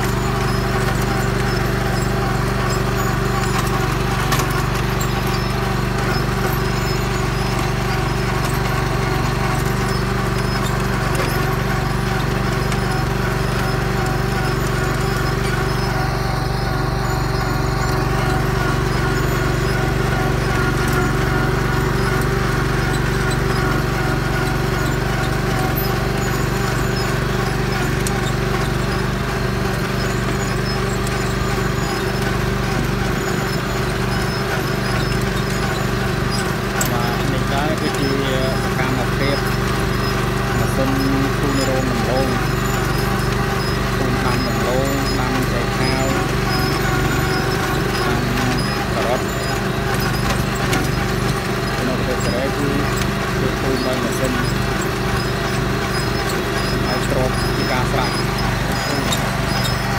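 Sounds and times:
rhythmic clatter of implement: 0.0s - 59.9s
tractor engine running: 0.0s - 59.9s.

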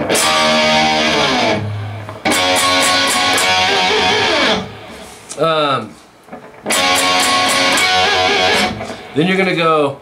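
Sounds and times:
electric guitar strumming chords: 0.0s - 5.1s, 6.3s - 9.2s.

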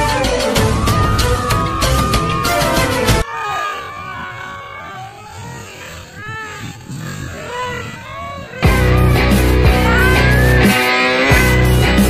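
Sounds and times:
people calling out and exclaiming: 0.0s - 12.0s.

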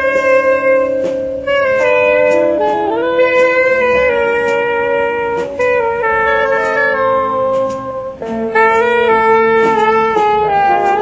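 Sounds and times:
drums: 0.0s - 11.0s
saxophones holding long notes: 0.0s - 11.0s.

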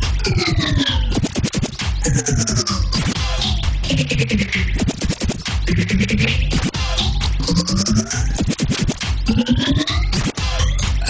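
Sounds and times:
beat: 0.0s - 11.0s
turntable scratching: 0.0s - 11.0s.

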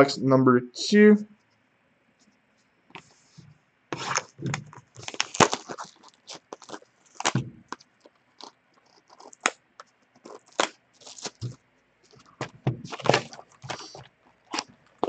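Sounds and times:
cardboard box tearing: 4.0s - 7.5s, 10.2s - 11.6s, 12.4s - 14.7s
plastic wrap crackling: 4.0s - 15.0s.

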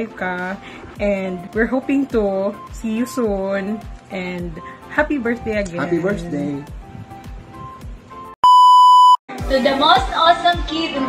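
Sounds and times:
soft music with steady beat: 0.0s - 8.4s
high-pitched test-tone beep: 8.4s - 9.2s.

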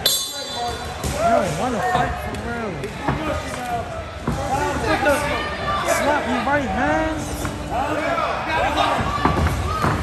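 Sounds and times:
voices shouting in a hall: 3.1s - 10.0s.

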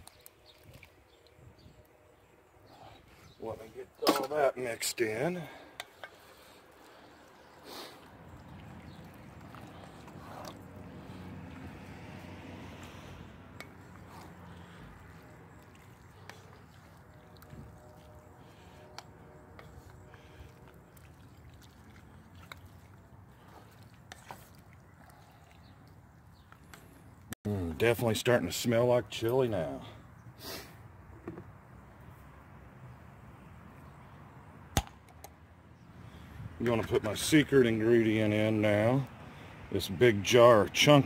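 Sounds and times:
wet squelching of stirred food: 0.0s - 3.9s, 5.4s - 27.3s.

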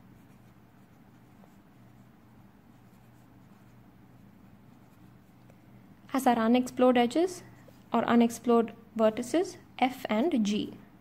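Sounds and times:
marker scratching on paper: 0.0s - 5.6s
low steady hum: 0.0s - 11.0s.

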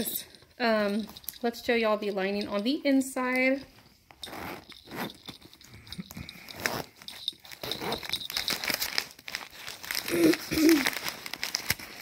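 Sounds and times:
zipper being pulled open: 4.2s - 5.5s, 6.4s - 8.4s
packing paper crinkling: 6.4s - 12.0s.

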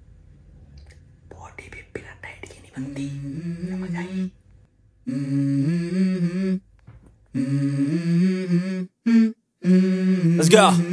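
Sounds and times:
man whispering: 1.3s - 4.3s, 10.3s - 10.9s
man humming a tune: 2.8s - 4.4s, 5.0s - 6.7s, 7.3s - 10.9s.

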